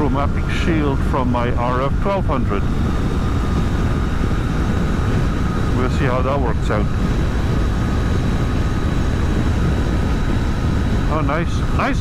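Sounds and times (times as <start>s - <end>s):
wind and road noise: 0.0s - 12.0s
motorcycle engine running: 0.9s - 12.0s.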